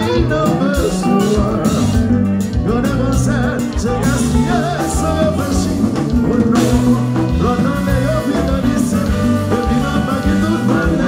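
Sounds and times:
live band playing: 0.0 - 11.0
man singing lead vocal: 0.0 - 11.0.

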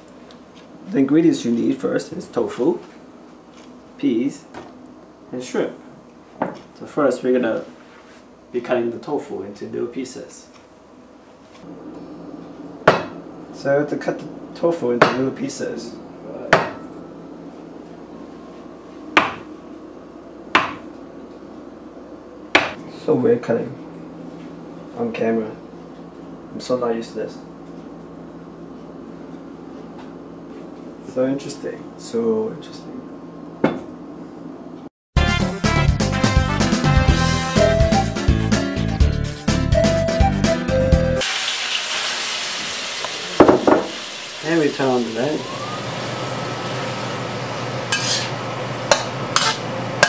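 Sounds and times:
cleaver knocking on cutting board: 20.6 - 20.8, 43.4 - 43.9
background music with steady beat: 35.2 - 41.2
shrimp sizzling in a wok: 41.2 - 49.7.

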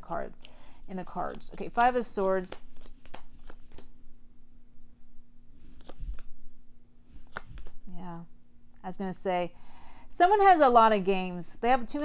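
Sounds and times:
faint steady hum: 0.0 - 12.0
cards laid on table: 0.4 - 3.9, 5.6 - 6.3, 7.1 - 7.8
card handling: 0.4 - 4.0, 5.6 - 6.3, 7.1 - 7.8.

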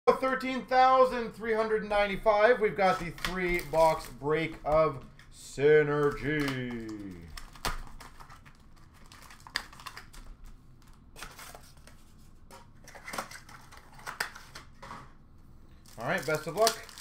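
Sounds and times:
plastic wrapping tearing and crinkling: 2.8 - 4.2, 6.0 - 12.0, 15.7 - 17.0.

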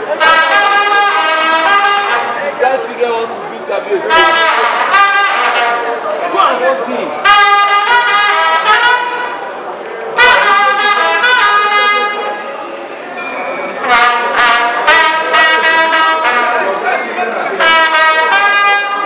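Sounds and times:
brass instruments playing held notes: 0.0 - 2.6, 4.0 - 6.2, 7.2 - 9.6, 10.2 - 12.5, 13.7 - 19.0
people talking: 0.0 - 19.0.

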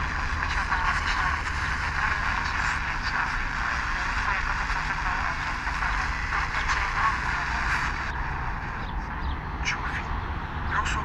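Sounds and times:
radio static hiss: 0.0 - 8.9
faint radio speech: 0.0 - 11.0.

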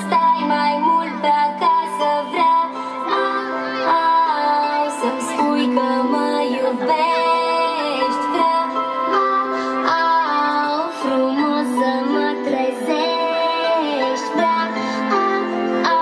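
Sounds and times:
backing track: 0.0 - 16.0
woman singing children's song: 0.0 - 16.0.

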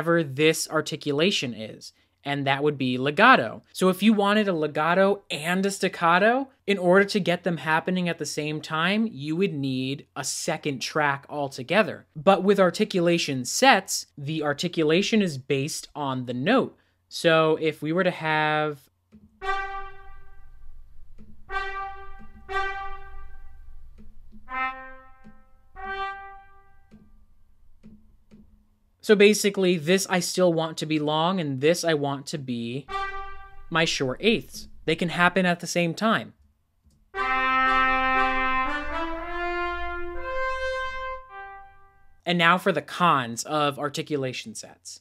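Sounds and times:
trumpet playing held notes: 19.4 - 20.6, 21.5 - 23.8, 24.4 - 26.9, 32.8 - 33.8, 37.2 - 42.2.

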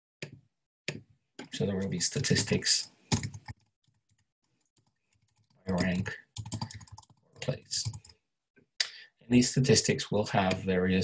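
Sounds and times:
man talking: 1.4 - 2.9, 5.7 - 6.3, 7.4 - 7.9, 8.8 - 11.0
keyboard typing: 3.1 - 8.2.

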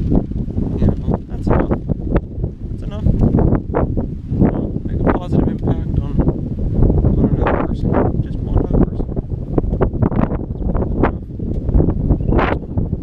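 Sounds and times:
wind buffeting microphone: 0.0 - 13.0
man's voice: 0.8 - 1.8, 4.5 - 6.2, 7.1 - 9.1.

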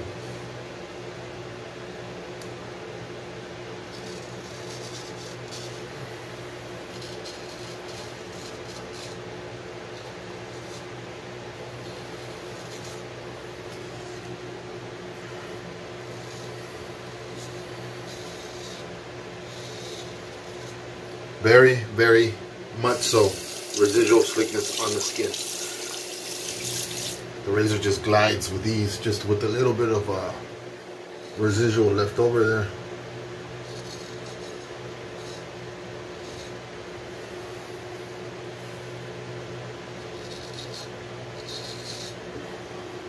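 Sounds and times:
low mechanical hum: 0.0 - 43.0
razor scratching stubble: 3.8 - 9.3, 9.9 - 14.4, 16.0 - 20.9, 22.8 - 27.9, 31.0 - 32.6, 33.6 - 36.6, 40.0 - 42.4.

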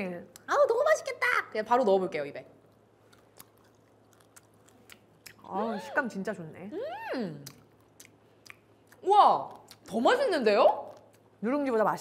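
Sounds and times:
rice cracker being chewed: 2.7 - 5.4.

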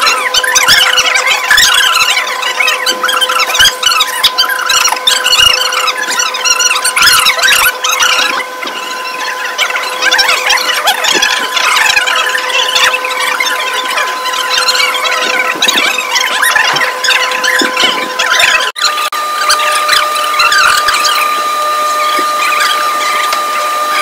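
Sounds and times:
steady high-pitched whine: 0.0 - 24.0.

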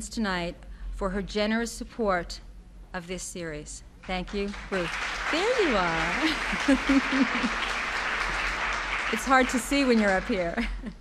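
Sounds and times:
audience applauding: 4.3 - 10.7.

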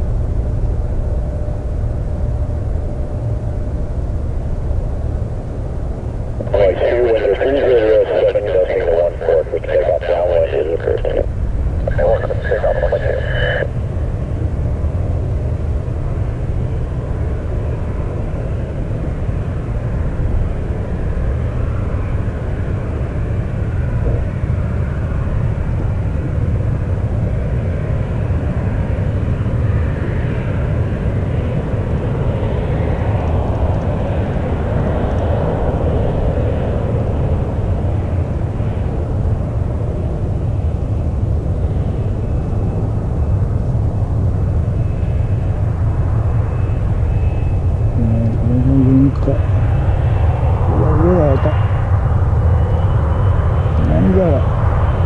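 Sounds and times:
jet engine rumble: 0.0 - 55.0.

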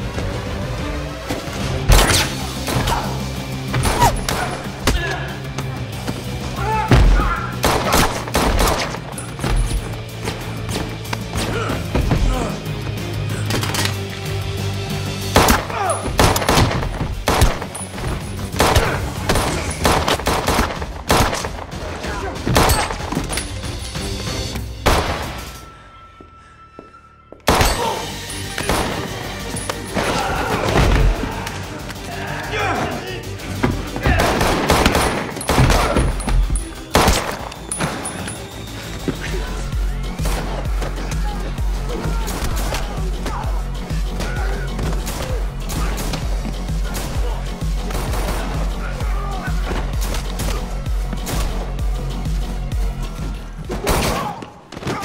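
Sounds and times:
film music score: 0.0 - 55.0
handgun shots: 15.4 - 17.8, 37.0 - 38.0.

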